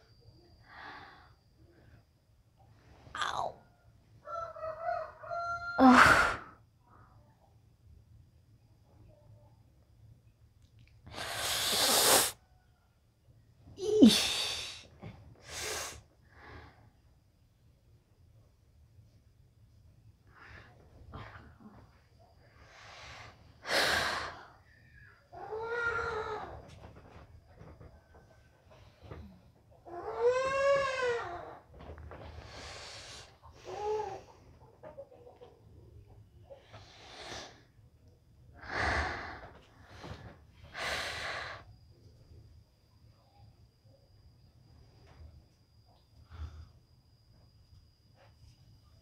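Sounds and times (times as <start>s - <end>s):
woman sighing and moaning: 3.2s - 3.6s, 5.8s - 6.6s, 13.8s - 14.8s.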